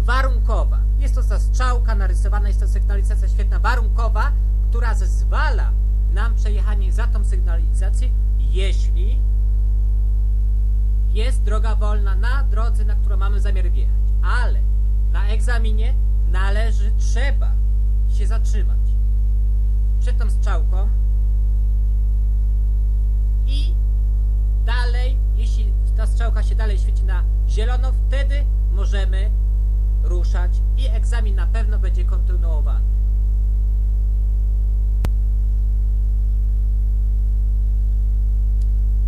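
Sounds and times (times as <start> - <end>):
electrical mains hum: 0.0 - 39.0.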